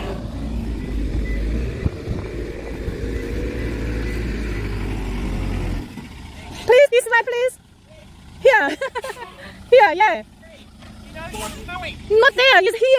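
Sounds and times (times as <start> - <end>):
truck engine low rumble: 0.0 - 12.9.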